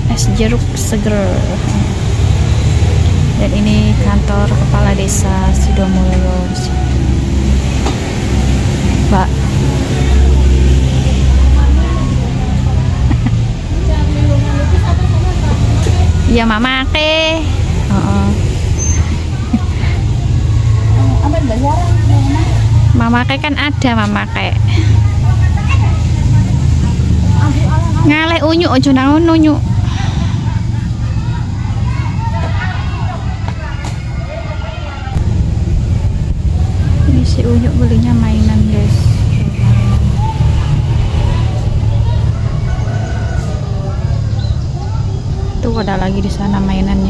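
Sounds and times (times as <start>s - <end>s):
people talking: 0.0s - 35.2s, 36.2s - 47.0s
steady low rumble: 35.1s - 47.0s.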